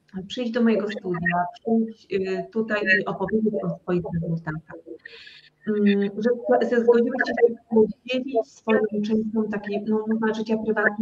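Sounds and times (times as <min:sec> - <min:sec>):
woman speaking: 0:00.2 - 0:11.0.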